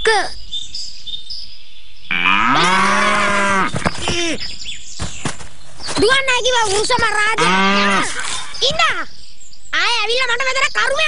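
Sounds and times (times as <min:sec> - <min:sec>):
cow mooing: 0:02.1 - 0:03.8, 0:07.4 - 0:08.3.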